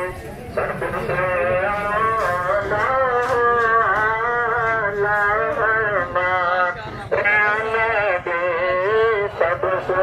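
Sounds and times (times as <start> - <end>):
street crowd rumble: 0.0 - 10.0
voice chanting in wavering notes: 0.0 - 10.0.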